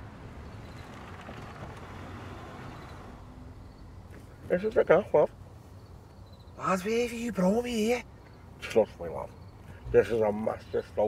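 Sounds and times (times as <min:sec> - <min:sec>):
car rumble: 0:00.0 - 0:11.0.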